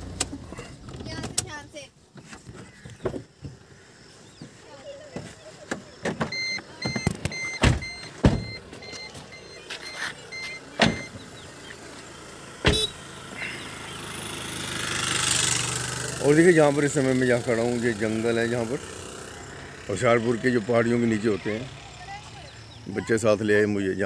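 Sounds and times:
car doors knocking shut: 5.2 - 8.6, 10.8 - 11.2, 12.6 - 12.9
car warning beeper: 6.2 - 11.4, 12.6 - 13.0.

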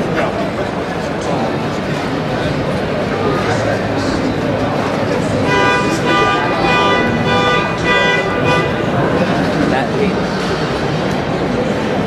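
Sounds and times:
crowd chatter in hall: 0.0 - 12.0
horn blasts: 5.4 - 9.3.

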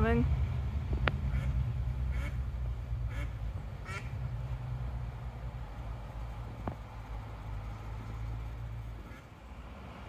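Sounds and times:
ducks quacking: 1.3 - 2.4, 3.1 - 4.2, 9.0 - 9.3.

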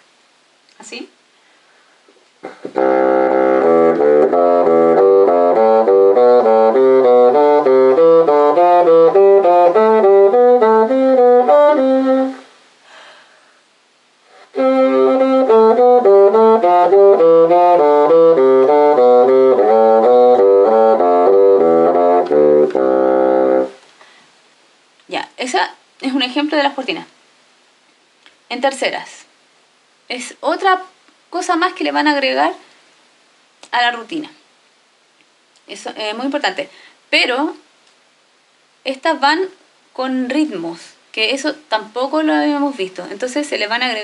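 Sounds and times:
bassoon playing scales: 2.5 - 12.5, 14.3 - 23.8.

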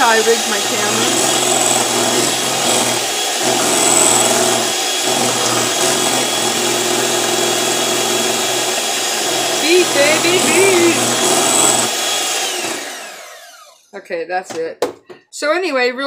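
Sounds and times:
electric hand mixer whirring: 0.0 - 14.0.

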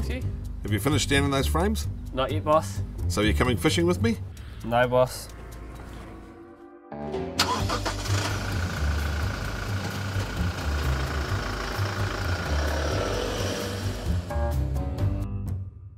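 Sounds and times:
background music: 0.0 - 15.9
truck engine starting and running: 7.1 - 14.9.

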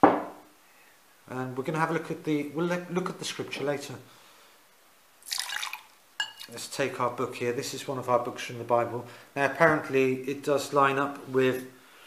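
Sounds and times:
water poured into glass: 5.2 - 6.6.

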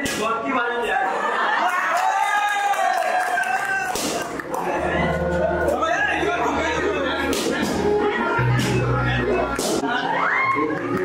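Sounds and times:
music with bass beat: 6.8 - 10.0.

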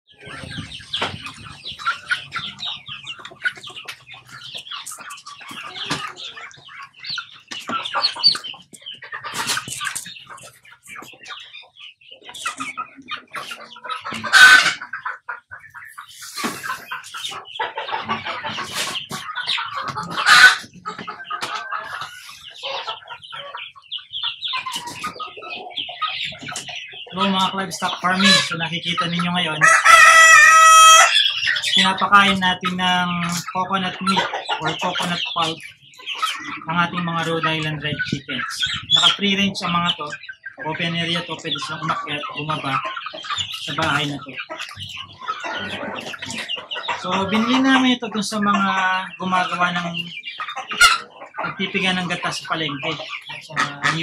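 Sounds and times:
hens clucking and calling: 0.1 - 54.0.

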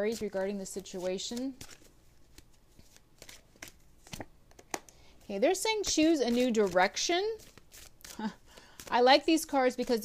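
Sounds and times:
cards rustling: 0.0 - 10.0.

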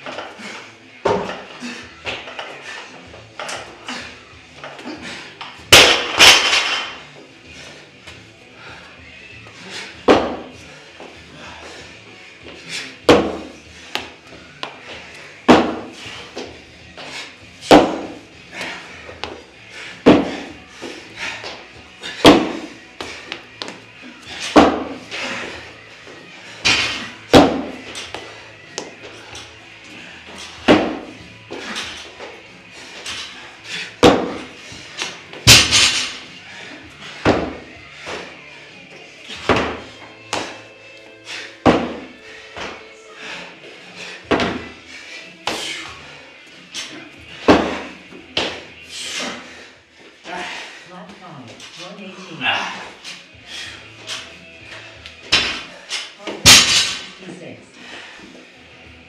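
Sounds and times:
background music: 0.0 - 59.0
barbell crashing onto floor: 35.5 - 36.2, 56.4 - 57.1.

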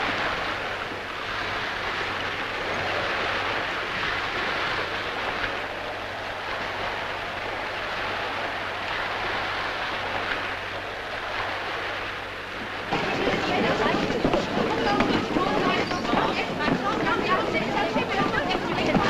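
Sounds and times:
sea water rushing around boat: 0.0 - 19.0.

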